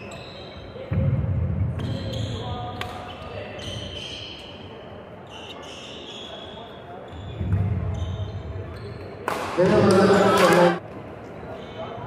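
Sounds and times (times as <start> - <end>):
shoes squeaking on court: 0.0 - 0.8, 1.8 - 9.2
faint echoing voices: 0.0 - 12.0.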